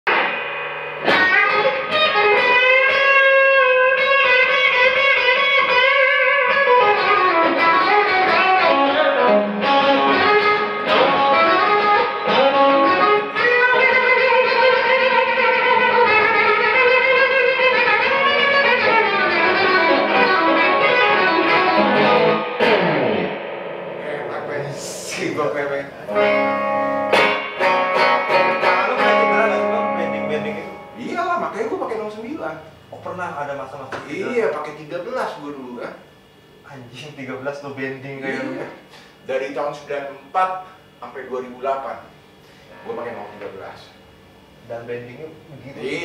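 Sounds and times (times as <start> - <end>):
electric guitar lead with bends: 0.1 - 31.1.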